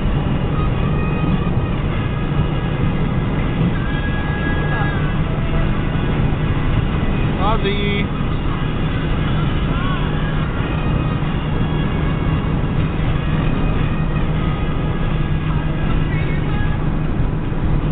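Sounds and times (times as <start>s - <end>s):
car road and engine drone: 0.0s - 17.9s
song on car stereo: 0.0s - 17.9s.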